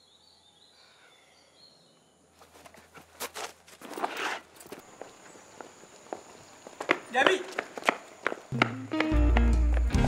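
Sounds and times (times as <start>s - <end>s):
high heels clicking on pavement: 4.7s - 10.0s
low music notes: 8.5s - 10.0s.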